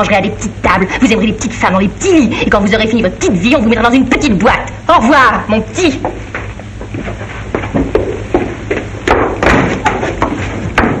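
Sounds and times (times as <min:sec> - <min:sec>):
film soundtrack hum: 0:00.0 - 0:11.0
footsteps on hard floor: 0:06.0 - 0:11.0.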